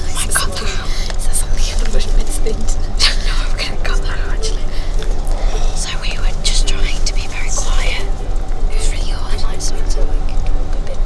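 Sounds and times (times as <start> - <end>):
low rumble inside a coach: 0.0 - 11.0
people whispering: 0.0 - 11.0.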